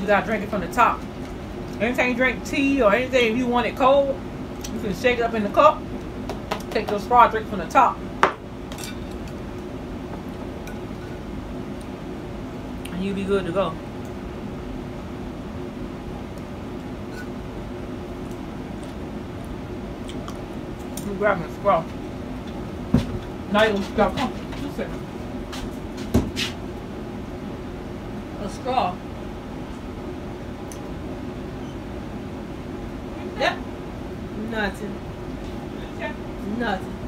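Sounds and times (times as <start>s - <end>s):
low steady hum: 0.0s - 37.0s
tableware clinking: 8.2s - 9.4s.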